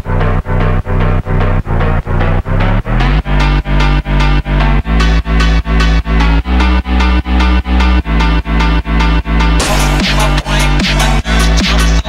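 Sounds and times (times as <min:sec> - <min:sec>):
phonk music with pumping bass: 0:00.0 - 0:12.0.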